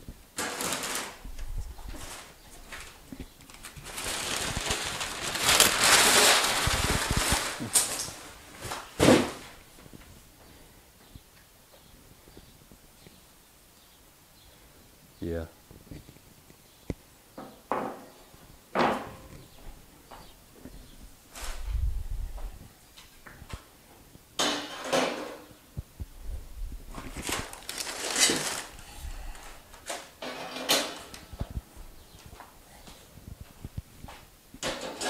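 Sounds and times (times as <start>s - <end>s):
metal grates clanking and rattling: 30.2s - 31.2s, 34.6s - 35.0s.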